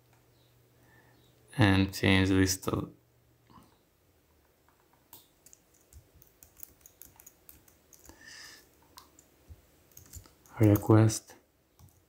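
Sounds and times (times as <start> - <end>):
computer keyboard keystrokes: 4.7 - 9.3, 9.9 - 10.9, 11.8 - 12.0.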